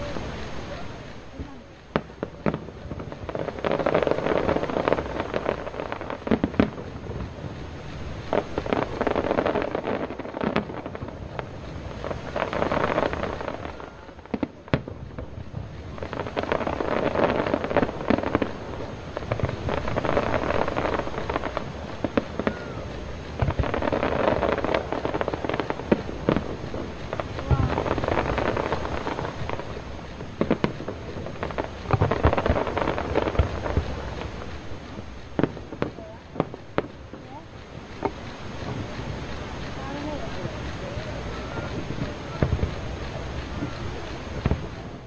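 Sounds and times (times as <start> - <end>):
fireworks bursting and crackling: 0.0 - 45.0.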